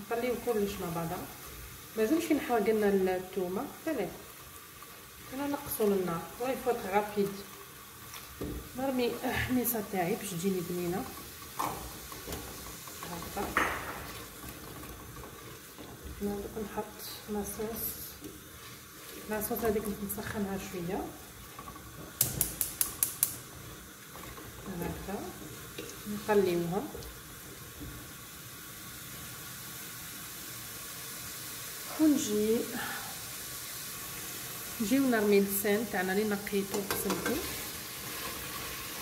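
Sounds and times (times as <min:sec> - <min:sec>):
sauce sizzling and bubbling: 0:00.0 - 0:39.0.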